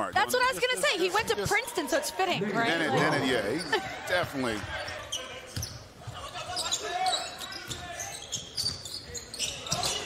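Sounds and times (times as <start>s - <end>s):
faint arena voices: 0.0s - 10.0s
sneaker squeaks: 4.8s - 10.0s.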